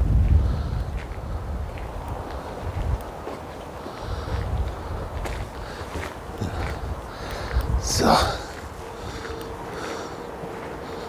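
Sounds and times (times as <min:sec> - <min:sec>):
wind buffeting microphone: 0:00.0 - 0:11.0
footsteps on gravel: 0:00.2 - 0:11.0.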